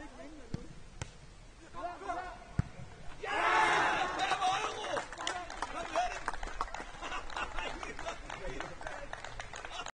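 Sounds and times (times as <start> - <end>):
players calling out: 1.6 - 8.9.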